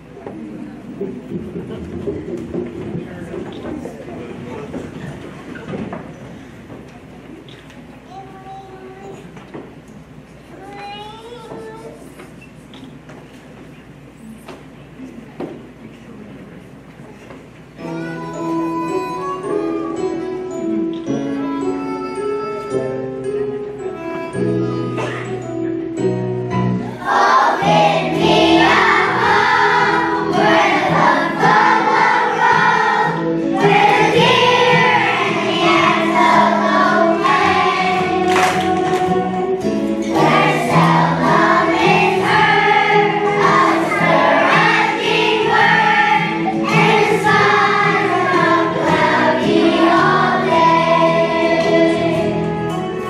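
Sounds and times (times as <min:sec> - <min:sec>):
instrumental backing track: 0:17.6 - 0:53.0
children's choir singing: 0:26.8 - 0:53.0.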